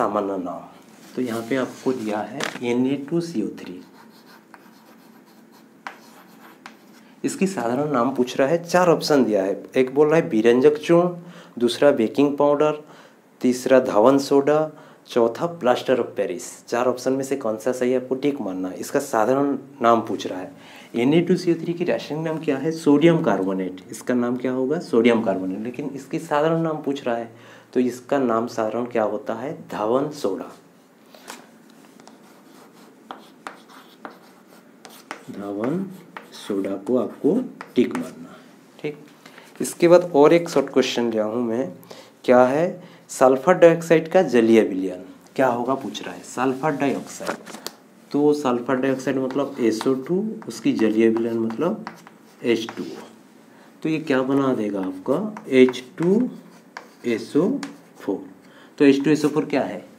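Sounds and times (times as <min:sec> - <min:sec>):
chalk scratching on chalkboard: 0:03.6 - 0:07.1, 0:31.8 - 0:38.2, 0:49.0 - 0:53.2, 0:54.6 - 0:58.2
chalk tapping on board: 0:03.8 - 0:07.0, 0:32.0 - 0:37.0, 0:37.6 - 0:38.1, 0:49.1 - 0:53.1, 0:54.7 - 0:58.0.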